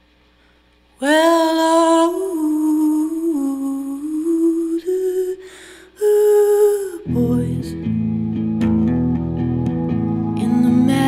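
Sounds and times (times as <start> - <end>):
woman humming a melody: 1.0 - 7.7.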